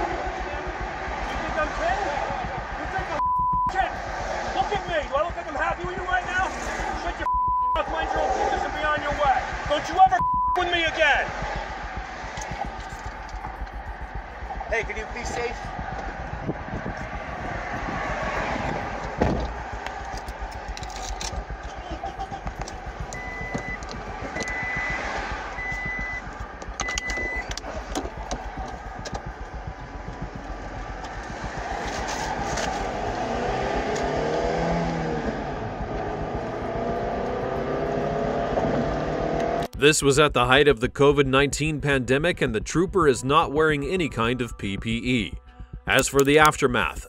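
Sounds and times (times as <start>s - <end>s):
highway traffic rumble: 0.0s - 39.8s
wavering engine drone: 0.0s - 39.8s
short high beeps: 3.2s - 3.8s, 7.3s - 7.9s, 10.1s - 10.7s, 23.1s - 27.6s.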